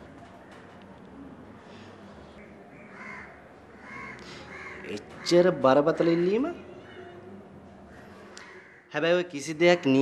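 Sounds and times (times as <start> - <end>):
harsh bird calls: 2.3 - 7.2.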